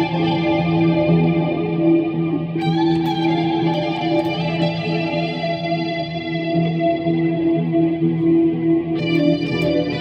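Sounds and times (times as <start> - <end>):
electric guitar playing slow blues: 0.0 - 10.0.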